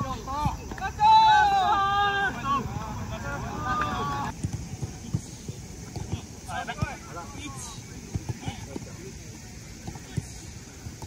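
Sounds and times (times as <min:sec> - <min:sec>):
players' voices: 0:00.0 - 0:11.0
footballs kicked on artificial turf: 0:04.3 - 0:09.1.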